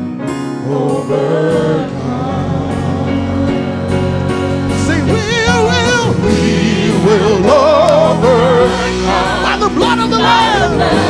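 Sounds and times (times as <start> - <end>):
gospel choir singing with a band: 0.3 - 11.0
lead voice singing with vibrato: 0.6 - 11.0.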